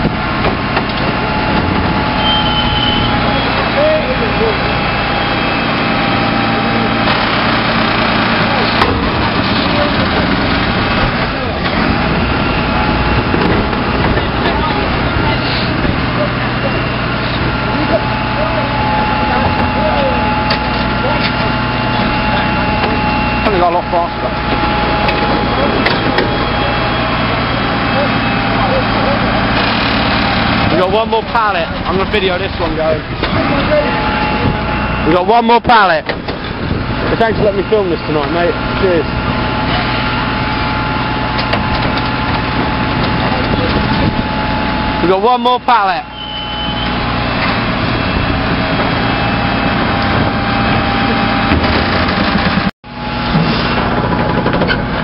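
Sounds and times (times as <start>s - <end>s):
hydraulic packer whine: 0.0s - 55.0s
refuse truck engine running: 0.0s - 55.0s.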